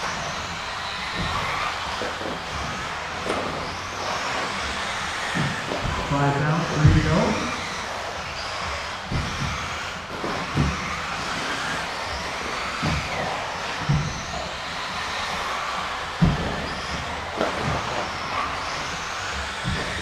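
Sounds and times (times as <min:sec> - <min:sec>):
rc buggies motor whine: 0:00.0 - 0:20.0.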